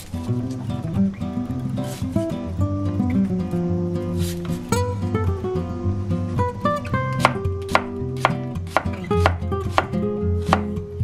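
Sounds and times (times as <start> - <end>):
acoustic guitar music: 0.0 - 11.0
knife slicing onion on cutting board: 7.1 - 10.8.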